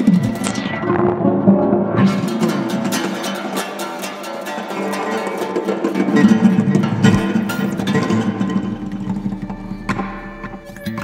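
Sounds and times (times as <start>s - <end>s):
acoustic guitar riff: 2.1s - 10.7s.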